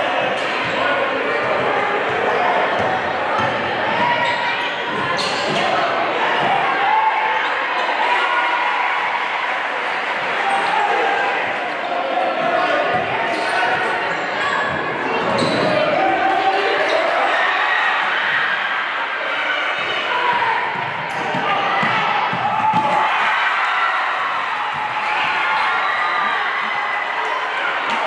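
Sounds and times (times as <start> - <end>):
crowd and player voices echoing: 0.0 - 28.0.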